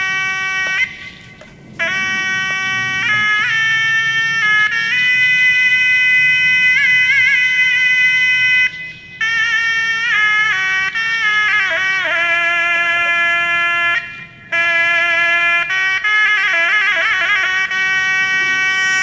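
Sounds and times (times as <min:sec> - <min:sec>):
melody of long held notes: 0:00.0 - 0:19.0.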